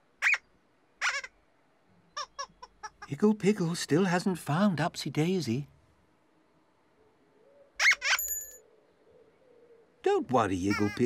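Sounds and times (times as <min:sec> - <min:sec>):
tinkling chime: 0:08.1 - 0:08.6.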